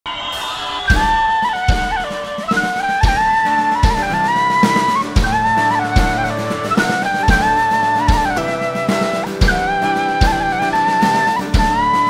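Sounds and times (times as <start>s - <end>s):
tin whistle melody: 0.1s - 12.0s
kick drum hits: 5.2s - 6.4s.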